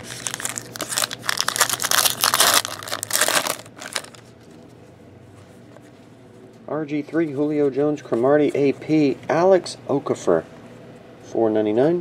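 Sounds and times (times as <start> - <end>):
foil wrapper crinkling: 0.0 - 4.3.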